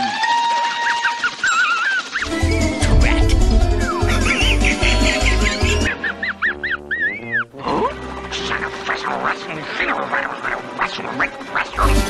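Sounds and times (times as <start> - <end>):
background music: 2.2 - 12.0
cartoon dog wheezing snicker: 3.9 - 7.4.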